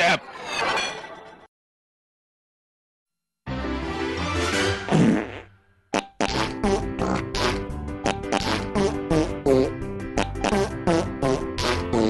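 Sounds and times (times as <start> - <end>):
upbeat background music: 3.5 - 5.3, 6.2 - 12.0
cartoon fart sound effect: 4.8 - 12.0.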